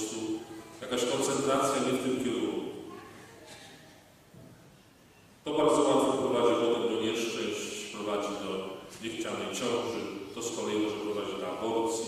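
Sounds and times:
man speaking: 0:00.0 - 0:02.8, 0:05.5 - 0:12.0.

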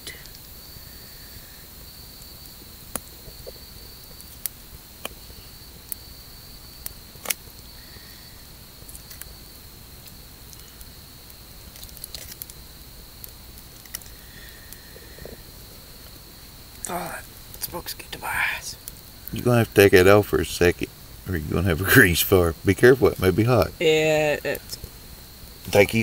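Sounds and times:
campfire crackling and popping: 0:00.0 - 0:26.0
night insects chirring: 0:00.0 - 0:26.0.

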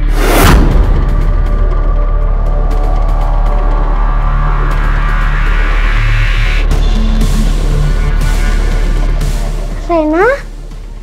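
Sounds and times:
deep bass drone: 0:00.0 - 0:11.0
suspenseful drama score: 0:00.0 - 0:11.0.

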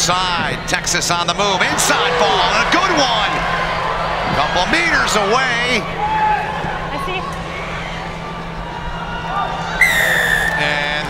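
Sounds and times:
stadium crowd murmuring: 0:00.0 - 0:11.0
referee's whistle blast: 0:09.8 - 0:10.8.

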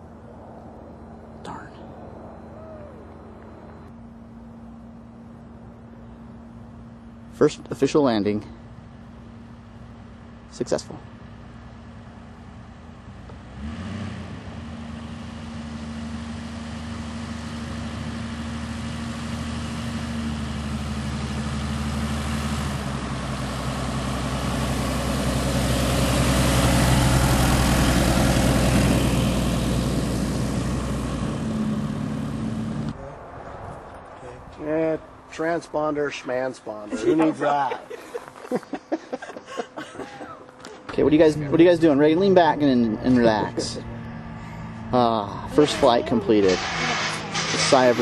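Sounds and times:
light aircraft engine and propeller: 0:00.0 - 0:34.8, 0:38.4 - 0:48.0.

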